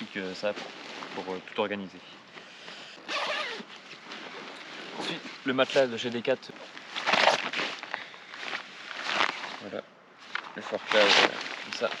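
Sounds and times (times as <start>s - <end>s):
backpack zip opening: 3.0s - 5.1s.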